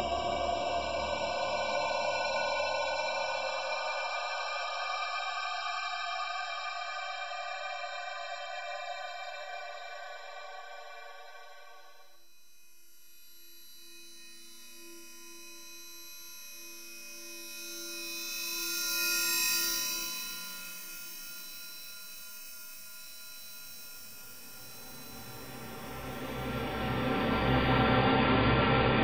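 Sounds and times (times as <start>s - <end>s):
bright high wash: 24.1s - 29.0s.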